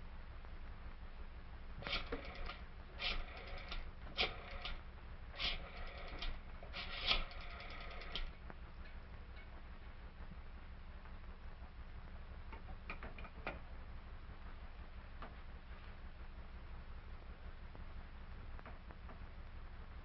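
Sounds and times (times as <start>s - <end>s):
rapid metallic mechanical clicking: 1.8s - 4.8s, 5.4s - 8.3s.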